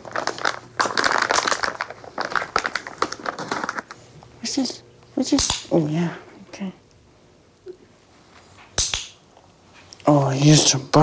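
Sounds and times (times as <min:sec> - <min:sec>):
plastic packaging crinkling: 0:00.0 - 0:04.1.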